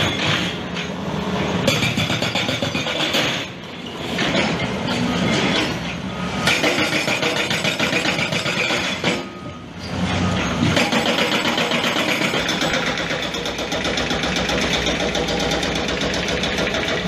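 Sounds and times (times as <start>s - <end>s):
heavy machinery running: 0.0s - 17.0s.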